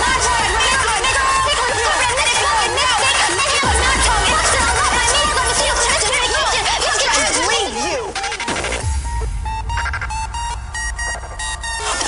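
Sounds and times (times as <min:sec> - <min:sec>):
high synth stabs: 0:08.0 - 0:12.0
beeping synth notes: 0:08.1 - 0:12.0
deep bass drone: 0:08.5 - 0:12.0.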